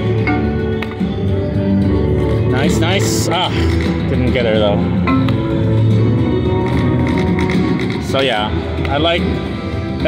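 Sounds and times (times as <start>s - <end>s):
slot machine game music: 0.0s - 10.0s.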